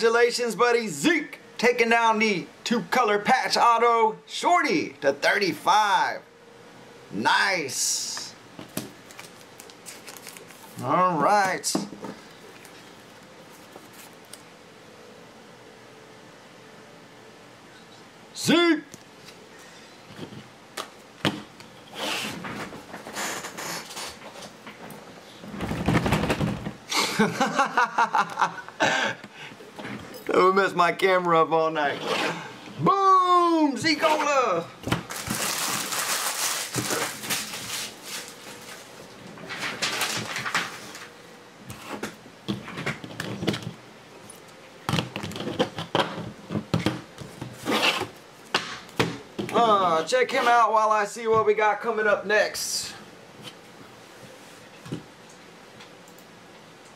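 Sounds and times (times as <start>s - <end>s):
cards rustling: 8.7s - 14.5s, 35.0s - 41.1s.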